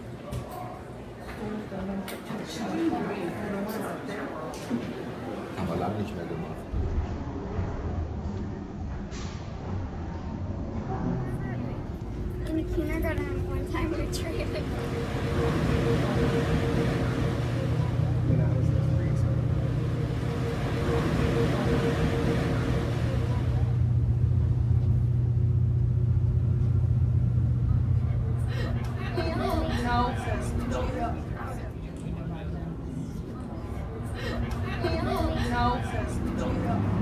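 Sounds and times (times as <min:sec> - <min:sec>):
passengers' voices: 0:00.0 - 0:37.0
ferry engines droning: 0:05.0 - 0:37.0
water rushing in wake: 0:13.9 - 0:23.8.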